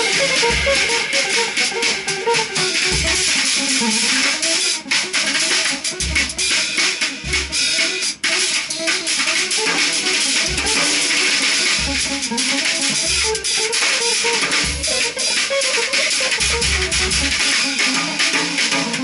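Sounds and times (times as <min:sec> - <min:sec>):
cymbals washing: 0:05.4 - 0:19.0.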